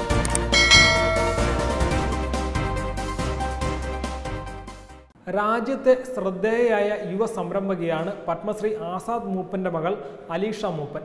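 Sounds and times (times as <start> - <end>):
background music: 0.0 - 5.1
quick clicks: 0.1 - 0.6
bright bell ding: 0.6 - 2.1.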